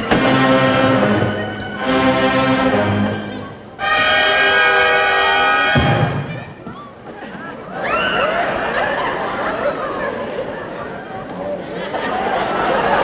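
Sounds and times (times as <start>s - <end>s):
orchestral music chords: 0.0s - 6.6s.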